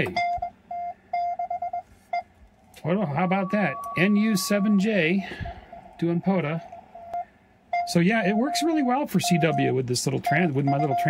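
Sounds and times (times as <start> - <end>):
morse code tone: 0.0 - 6.0, 7.0 - 11.0.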